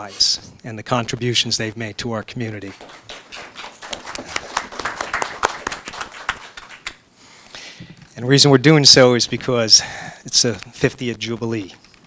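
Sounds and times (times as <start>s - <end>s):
small group applauding: 2.6s - 7.0s.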